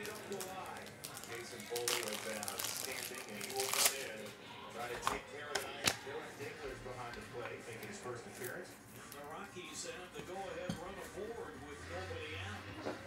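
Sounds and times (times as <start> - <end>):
cards and wrappers crinkling: 0.0 - 9.6.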